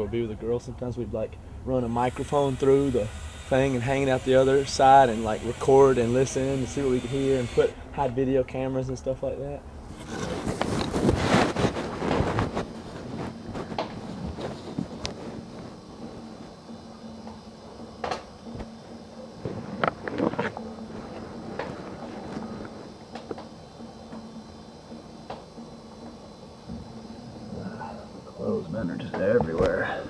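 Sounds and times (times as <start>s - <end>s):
steady low hum: 0.0s - 30.0s
cloth rustling against microphone: 9.9s - 16.3s.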